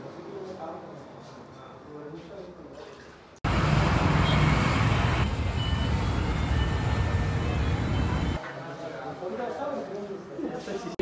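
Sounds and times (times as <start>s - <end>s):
rumble of passing vehicles: 3.5s - 8.4s.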